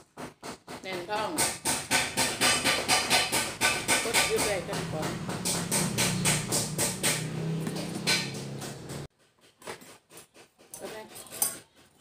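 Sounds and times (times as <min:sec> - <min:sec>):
regular knocking: 0:00.0 - 0:09.1.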